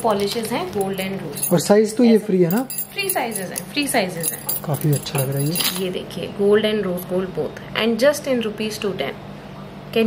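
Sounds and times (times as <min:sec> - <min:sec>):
metal bangles clinking: 0:00.7 - 0:01.7, 0:02.5 - 0:05.9.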